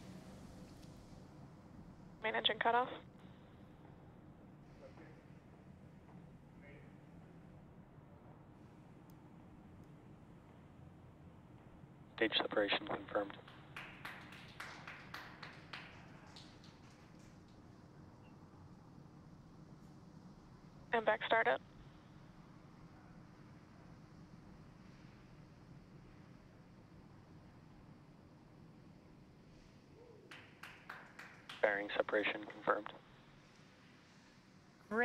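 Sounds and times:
faint background hiss: 0.0 - 35.0.

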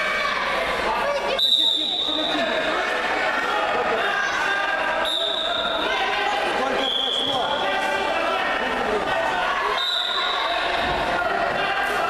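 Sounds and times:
spectators talking in echoing hall: 0.0 - 12.0
referee's whistle blasts: 1.4 - 2.5, 5.0 - 5.8, 6.8 - 7.4, 9.7 - 10.5.

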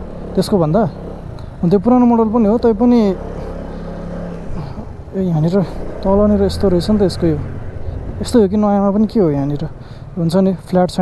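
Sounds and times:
scooter engine running: 0.0 - 10.2
road noise: 0.0 - 11.0
wind: 0.0 - 11.0.

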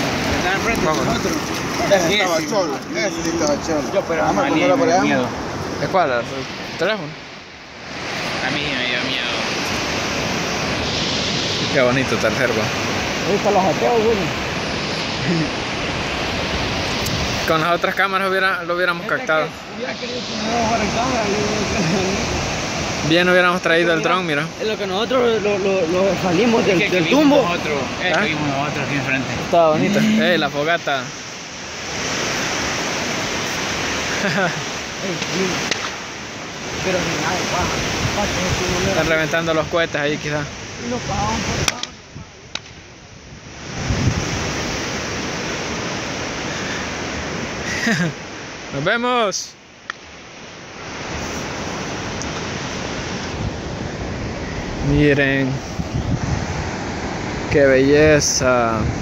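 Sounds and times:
surf breaking on beach: 0.0 - 59.0
wind on microphone: 9.3 - 17.5, 35.3 - 39.2, 40.4 - 47.6, 50.8 - 59.0.

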